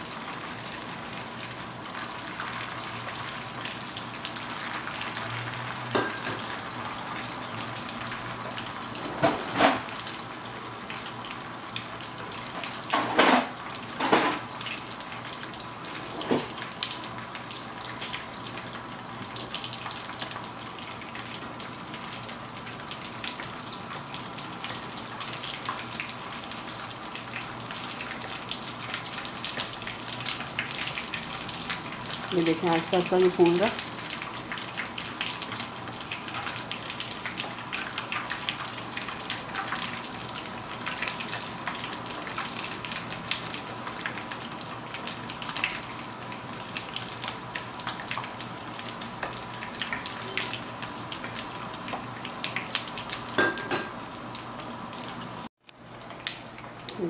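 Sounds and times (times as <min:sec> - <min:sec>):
gum sizzling and bubbling in oil: 0:00.0 - 0:57.0.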